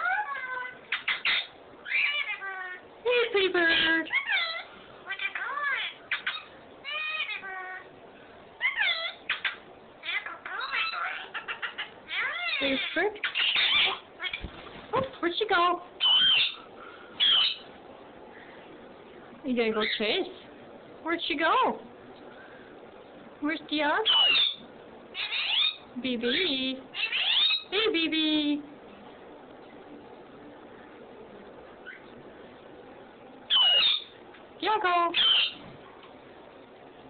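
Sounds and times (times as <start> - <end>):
parrots chattering and calling: 0.0 - 8.0, 8.6 - 17.8, 19.6 - 20.4, 23.9 - 28.0, 31.8 - 32.2, 33.4 - 35.7.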